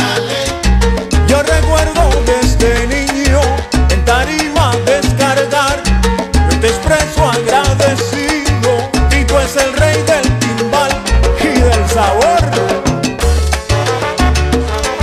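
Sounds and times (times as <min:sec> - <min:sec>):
bass line of low notes: 0:00.0 - 0:15.0
instrumental salsa music: 0:00.0 - 0:15.0
dense percussion: 0:05.9 - 0:15.0
melodic lines bending in pitch: 0:09.0 - 0:14.2.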